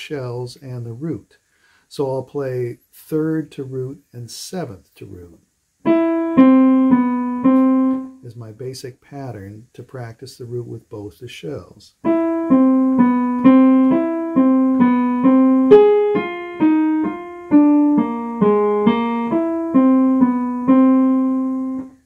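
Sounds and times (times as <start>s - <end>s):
piano playing single notes: 5.8s - 8.2s, 12.0s - 22.0s.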